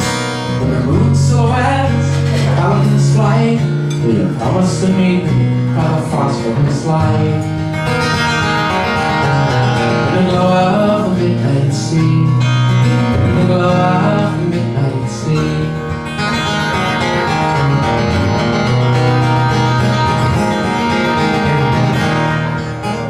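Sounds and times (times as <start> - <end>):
amplified acoustic guitar: 0.0 - 23.0.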